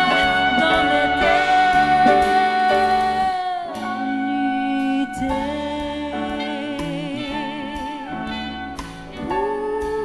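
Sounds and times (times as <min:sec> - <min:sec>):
jazz band playing ballad: 0:00.0 - 0:10.0.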